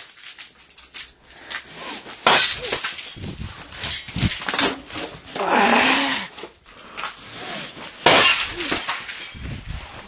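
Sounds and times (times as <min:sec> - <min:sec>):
glass shards clattering: 0:00.0 - 0:05.1, 0:08.0 - 0:09.8
glass cup smashing: 0:02.2 - 0:04.7, 0:08.1 - 0:09.4.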